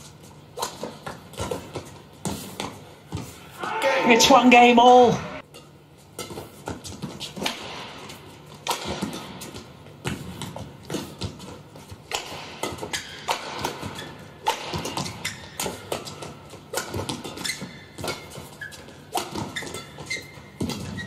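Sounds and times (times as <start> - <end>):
rackets hitting shuttlecock: 4.8 - 11.4, 12.0 - 21.0
shoe squeaks: 15.1 - 15.7, 17.3 - 21.0.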